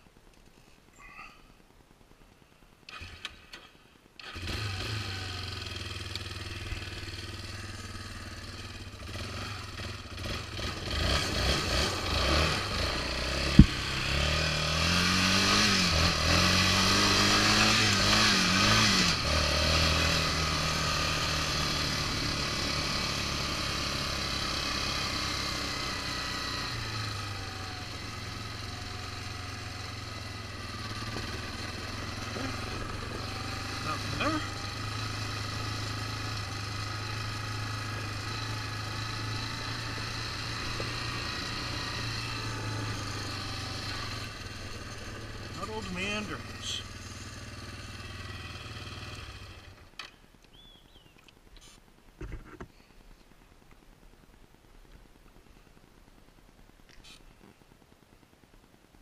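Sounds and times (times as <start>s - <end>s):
quad bike engine revving: 2.9s - 50.1s.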